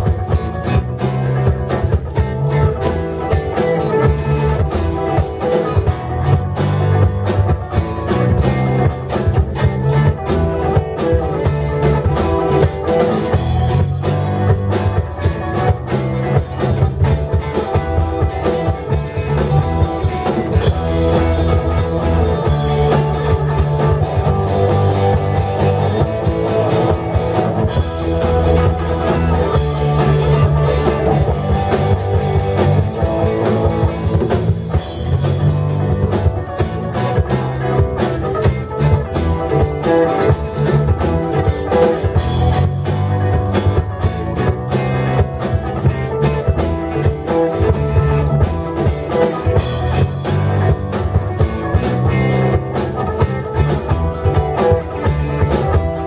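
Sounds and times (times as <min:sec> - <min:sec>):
bass line: 0:00.0 - 0:56.0
drum kit: 0:00.0 - 0:56.0
electric guitars: 0:00.0 - 0:56.0.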